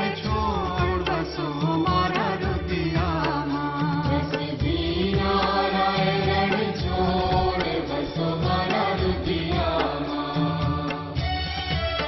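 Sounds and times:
devotional chanting: 0.0s - 12.0s
music with percussion: 0.0s - 12.0s.

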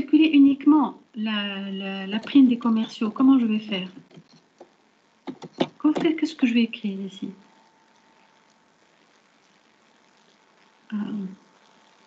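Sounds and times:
keyboard typing clicks: 5.3s - 6.1s.

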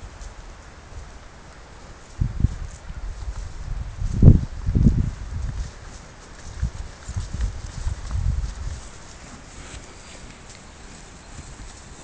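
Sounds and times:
cow hooves thudding on grass: 0.0s - 12.0s.

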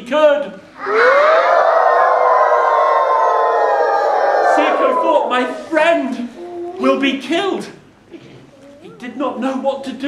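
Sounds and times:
man imitating wolf howl: 0.8s - 5.6s.

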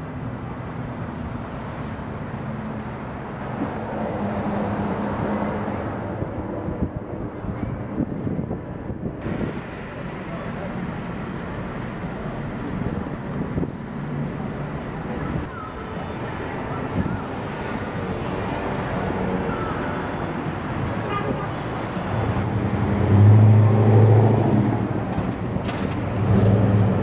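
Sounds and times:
road traffic passing: 0.0s - 27.0s.

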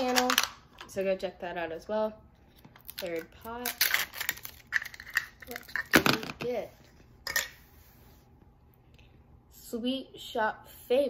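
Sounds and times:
plastic capsule clatter: 0.0s - 0.9s, 3.8s - 6.4s.

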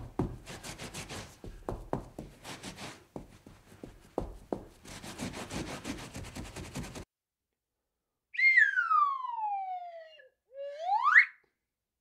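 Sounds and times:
slide whistle gliding: 8.4s - 11.5s.

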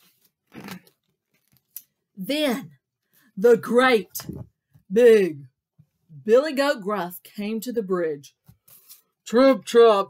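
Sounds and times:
page turning rustle: 0.0s - 1.8s.

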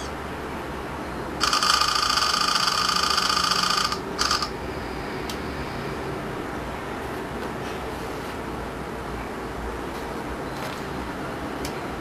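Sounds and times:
steady low hum: 0.0s - 12.0s
camera shutter sound bursts: 1.4s - 4.6s.

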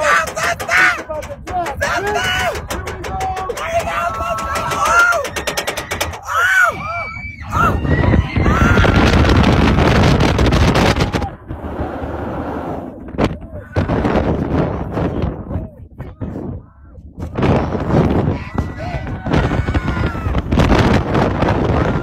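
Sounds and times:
roller coaster clattering: 0.0s - 15.7s
wind buffeting microphone: 0.0s - 22.0s.

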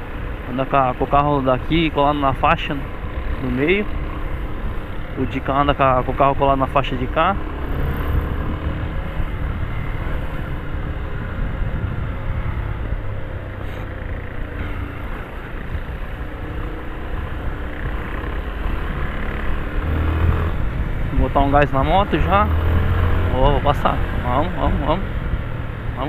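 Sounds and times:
motorcycle engine running: 0.0s - 26.0s.

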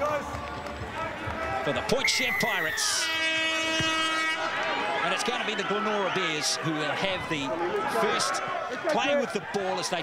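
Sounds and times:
horn blast: 2.8s - 4.6s.

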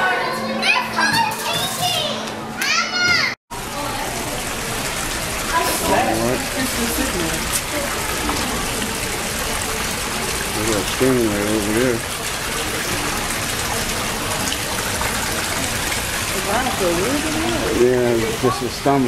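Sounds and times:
aquarium water rushing: 3.5s - 19.0s.

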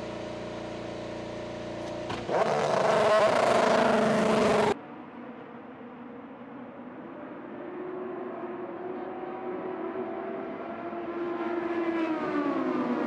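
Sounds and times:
race car engines passing: 0.0s - 13.0s.

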